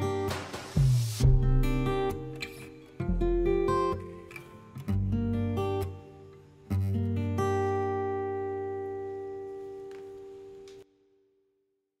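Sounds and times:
acoustic guitar chord ringing: 0:00.0 - 0:10.7.

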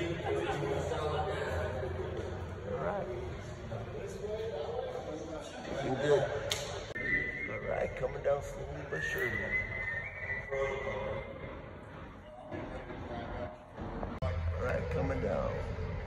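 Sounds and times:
workers talking: 0:00.0 - 0:16.0.

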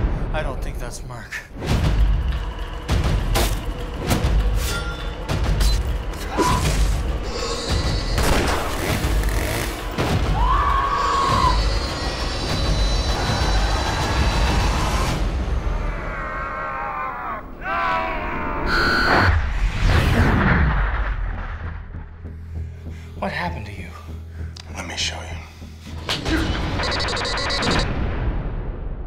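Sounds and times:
horror trailer score: 0:00.0 - 0:29.0.

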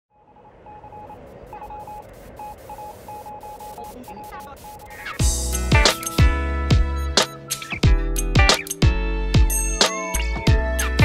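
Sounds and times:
short beeps: 0:00.1 - 0:05.2
static hiss: 0:00.9 - 0:06.2.

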